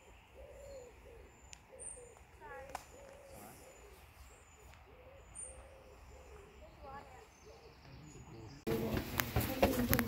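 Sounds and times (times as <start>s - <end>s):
bird cooing: 0.0s - 8.3s.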